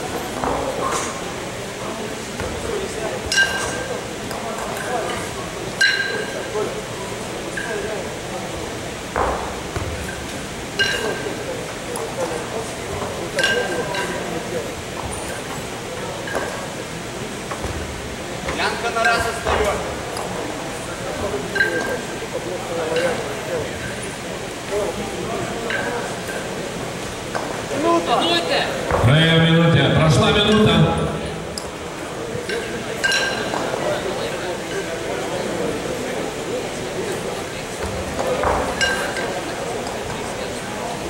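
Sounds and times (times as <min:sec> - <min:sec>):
murmur of voices: 0:00.0 - 0:41.0
kettlebells clinking: 0:03.3 - 0:03.9, 0:05.8 - 0:06.5, 0:10.8 - 0:11.4, 0:13.4 - 0:14.2, 0:21.5 - 0:22.1, 0:32.4 - 0:33.6, 0:38.7 - 0:39.4.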